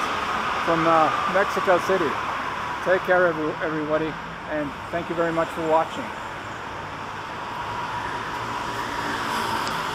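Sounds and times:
road traffic noise: 0.0 - 9.9.

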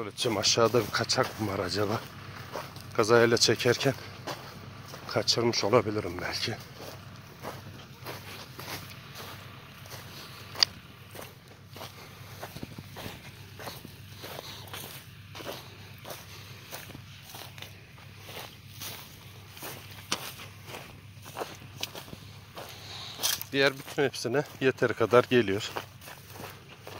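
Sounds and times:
faint low hum: 0.0 - 26.9
footsteps on dry grass: 0.0 - 26.9.

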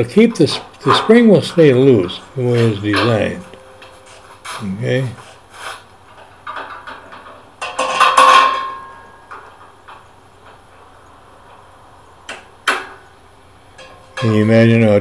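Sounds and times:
tools clanking on steel frame: 0.0 - 10.9, 13.7 - 14.8
ringing metallic clank: 0.8 - 4.3, 6.5 - 9.7, 13.7 - 14.8.

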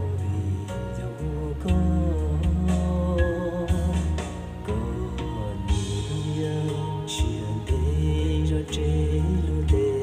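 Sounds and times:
electronic keyboard music: 0.0 - 10.0
steady drum beat: 1.7 - 8.3.

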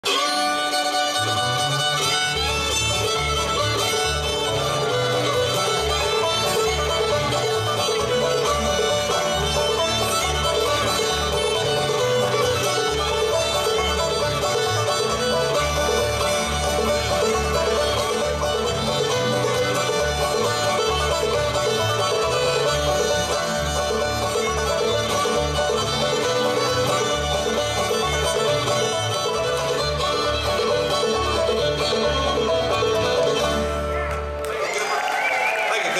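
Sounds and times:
bluegrass band playing: 0.0 - 35.4
upright bass: 0.7 - 34.4.

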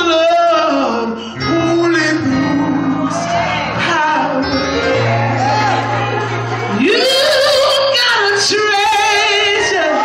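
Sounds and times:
woman singing gospel solo: 0.0 - 5.8, 6.6 - 10.0.

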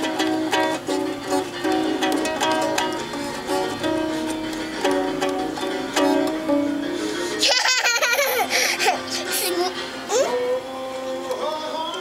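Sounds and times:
ukulele strum: 0.0 - 12.0
young child giggling: 7.4 - 10.4.

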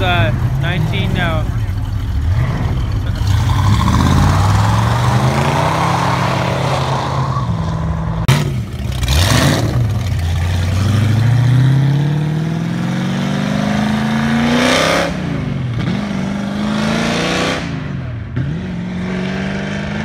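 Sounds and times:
car engines accelerating hard: 0.0 - 20.0.

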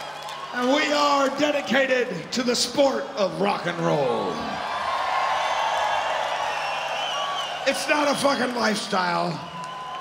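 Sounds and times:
crowd cheering and whooping: 0.0 - 1.6, 4.4 - 10.0.

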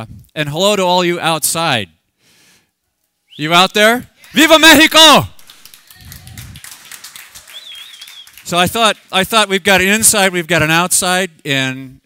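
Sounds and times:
audience clapping: 3.8 - 11.8.

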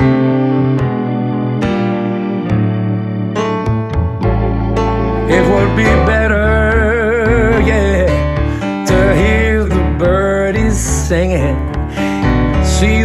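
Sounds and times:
blues song with bass guitar keyboard: 0.0 - 13.0.

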